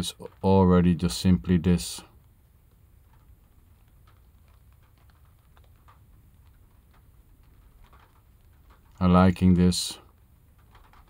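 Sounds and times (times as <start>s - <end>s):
raindrops ticking on car: 0.0s - 11.0s.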